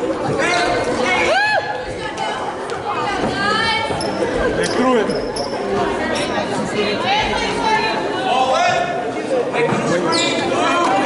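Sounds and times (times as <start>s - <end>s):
voices calling and chattering: 0.0s - 11.0s.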